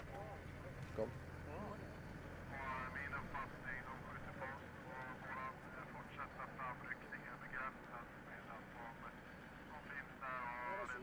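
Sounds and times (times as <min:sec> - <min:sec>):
drawn-out held sound: 0:00.0 - 0:11.0
voice over field radio: 0:02.5 - 0:11.0.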